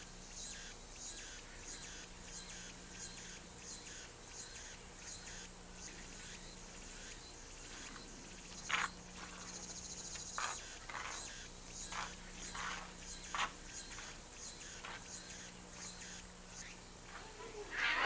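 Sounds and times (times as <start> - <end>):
insects chirping: 0.0 - 18.0.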